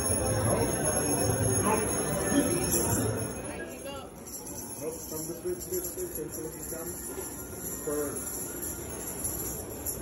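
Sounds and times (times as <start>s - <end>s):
christmas music with sleigh bells: 0.0s - 10.0s
murmur of shoppers: 0.0s - 10.0s.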